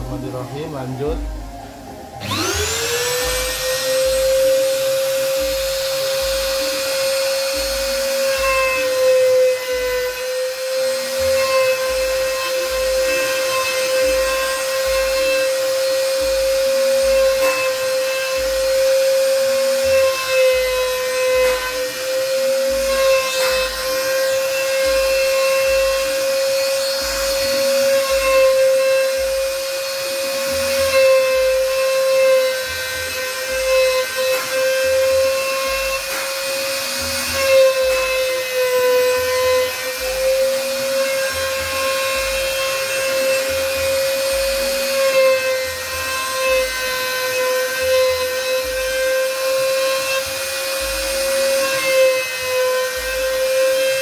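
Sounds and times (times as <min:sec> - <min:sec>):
router spindle high whine: 0:00.0 - 0:54.0
bit rasping through wood: 0:02.2 - 0:54.0.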